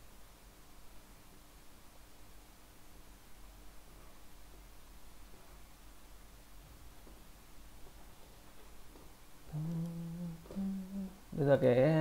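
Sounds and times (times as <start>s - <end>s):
man humming: 9.5s - 12.0s.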